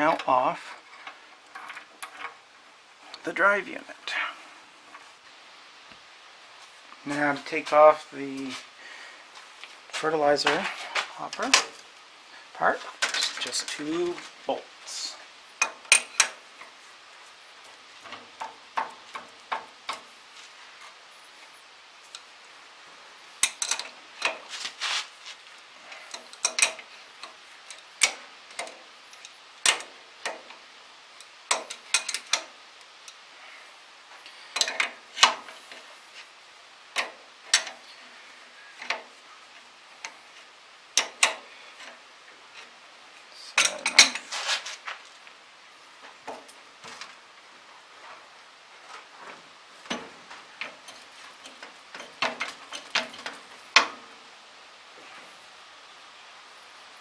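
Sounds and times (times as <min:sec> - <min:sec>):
wrench clicking on metal bolts: 0:15.6 - 0:16.4, 0:23.4 - 0:24.4, 0:26.1 - 0:30.6, 0:31.2 - 0:33.2, 0:34.6 - 0:35.5, 0:37.0 - 0:37.8, 0:41.0 - 0:42.0, 0:50.6 - 0:54.0.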